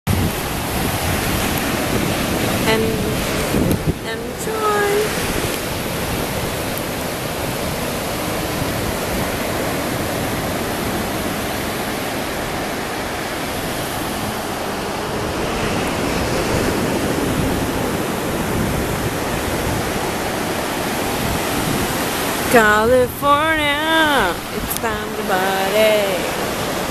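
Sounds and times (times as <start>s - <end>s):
ocean surf breaking on beach: 0.1s - 26.9s.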